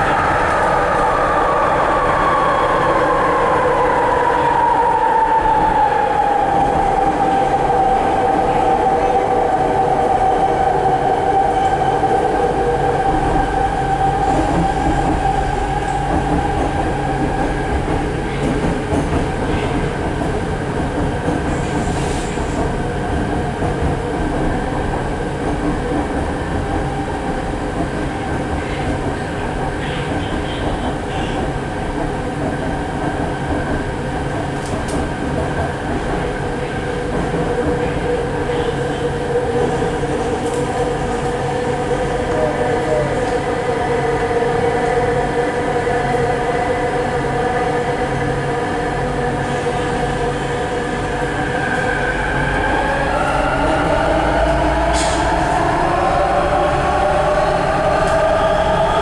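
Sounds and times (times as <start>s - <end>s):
metro car rumble on track: 0.0s - 59.0s.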